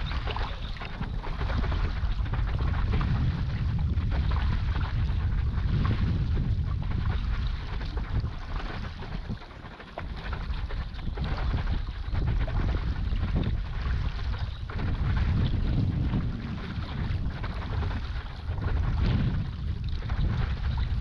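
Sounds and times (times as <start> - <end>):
water rushing and splashing: 0.0 - 6.8
wind buffeting microphone: 0.0 - 21.0.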